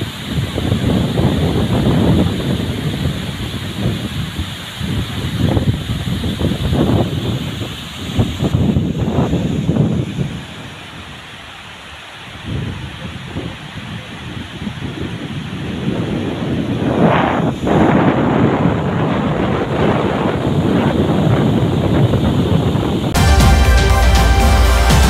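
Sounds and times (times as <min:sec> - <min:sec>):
wind buffeting microphone: 0:00.0 - 0:23.2
water rushing over spillway: 0:00.0 - 0:25.0.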